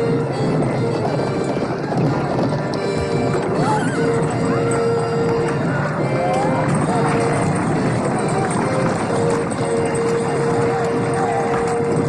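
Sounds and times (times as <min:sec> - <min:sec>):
hooves clattering: 0:00.0 - 0:12.0.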